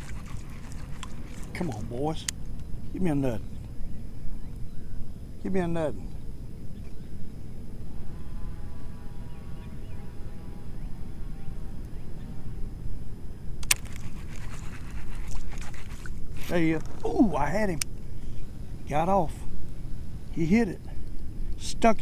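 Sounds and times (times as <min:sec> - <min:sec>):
wind and water rumble: 0:00.0 - 0:07.9, 0:12.7 - 0:22.0
fishing reel clicking and rattling: 0:13.6 - 0:16.1.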